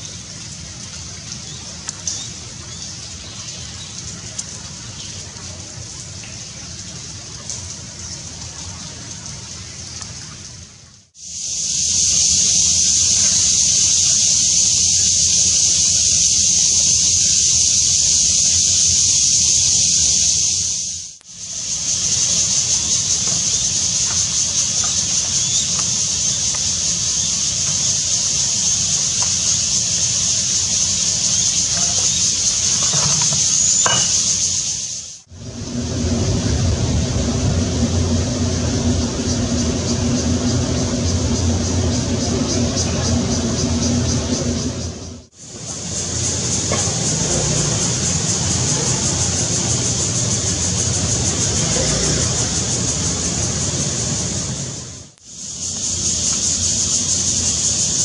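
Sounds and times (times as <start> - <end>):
high-pitched outdoor hiss: 0.0 - 9.2, 11.0 - 58.0
rain pattering: 0.0 - 58.0.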